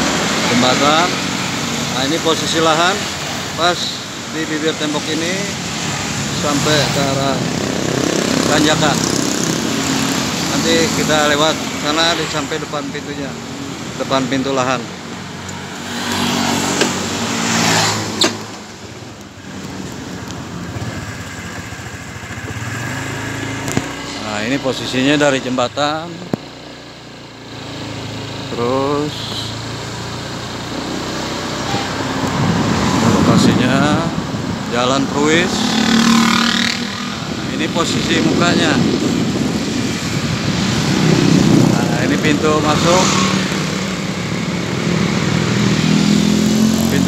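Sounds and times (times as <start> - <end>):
motorcycle passing by: 0.0 - 26.2, 27.4 - 47.0
traffic engine noise: 0.0 - 47.0
wind and road noise: 0.0 - 47.0.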